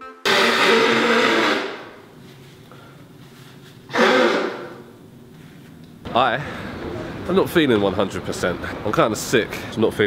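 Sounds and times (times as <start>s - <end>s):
person blowing nose: 0.2s - 2.0s, 3.9s - 4.9s.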